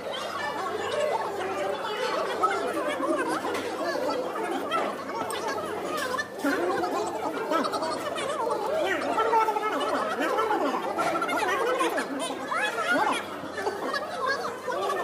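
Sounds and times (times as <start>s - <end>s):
voices chattering: 0.0s - 15.0s
laughter: 9.8s - 15.0s.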